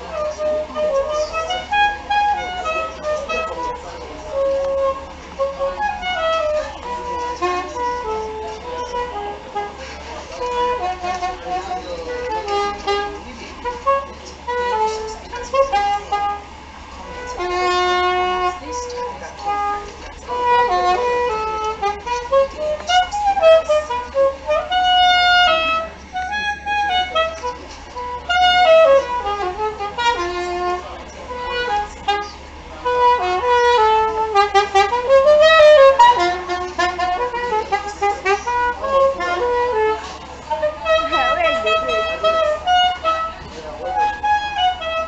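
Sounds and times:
soprano saxophone melody: 0.0 - 45.0.

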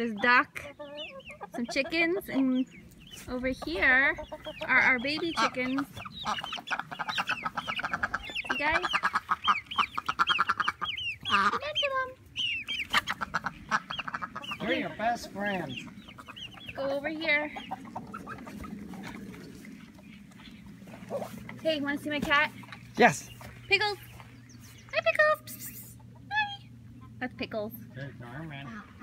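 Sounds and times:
chicks peeping: 0.0 - 27.7
chickens clucking: 0.0 - 29.0
low steady background noise: 0.0 - 29.0.

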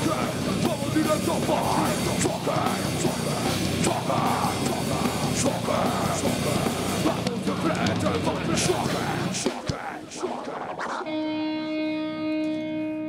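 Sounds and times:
metal band playing live: 0.0 - 10.0
vocalist into a microphone: 0.0 - 11.9.

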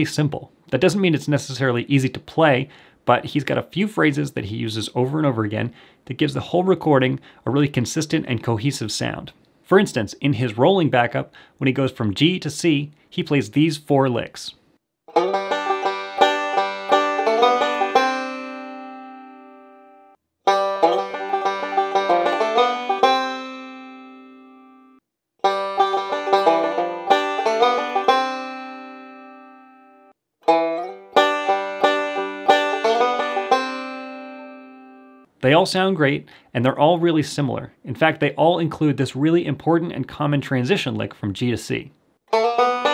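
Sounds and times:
banjo picking bluegrass licks: 15.1 - 19.4, 20.5 - 24.3, 25.4 - 29.7, 30.4 - 35.0, 42.3 - 42.9.

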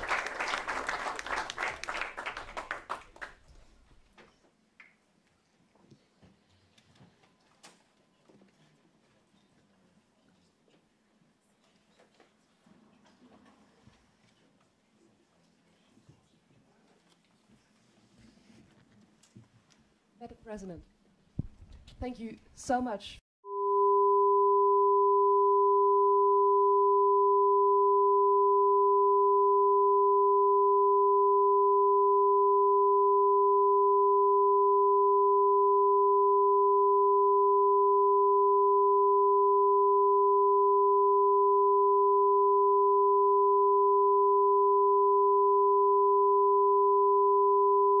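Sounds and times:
two steady pure test tones: 23.4 - 48.0.

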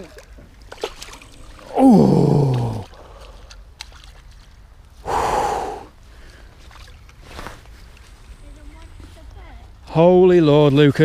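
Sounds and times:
man's breathy gasp: 5.0 - 5.9.

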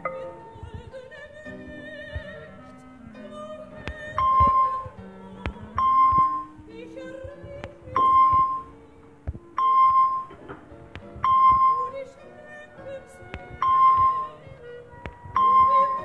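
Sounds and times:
slow background music: 0.0 - 16.0.

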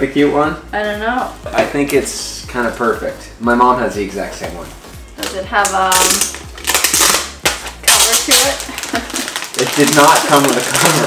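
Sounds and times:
plastic wrapping crinkling: 5.2 - 11.0.

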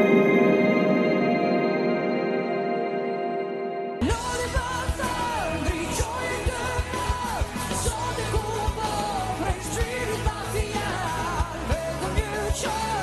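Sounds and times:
bass and held chords: 0.0 - 13.0
drums: 4.0 - 13.0
man singing rock ballad: 4.0 - 13.0.

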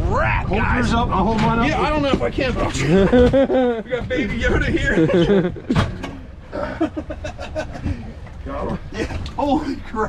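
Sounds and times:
outboard motors running: 0.8 - 10.0.

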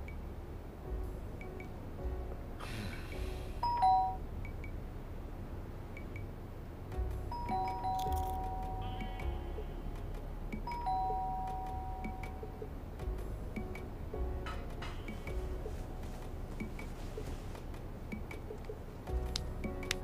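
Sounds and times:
soft background music: 0.0 - 20.0
doorbell ding-dong chime: 3.6 - 4.2, 7.3 - 9.2, 10.7 - 12.4.

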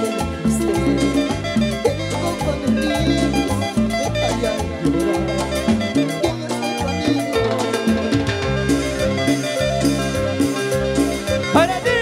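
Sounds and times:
electric bass: 0.0 - 12.0
electric guitar: 0.0 - 12.0
keyboard: 0.0 - 12.0
live band playing dance music: 0.0 - 12.0.

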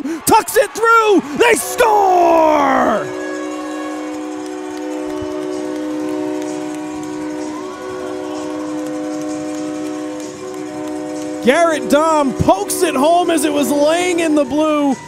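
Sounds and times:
ice hockey goal horn: 1.4 - 14.8.

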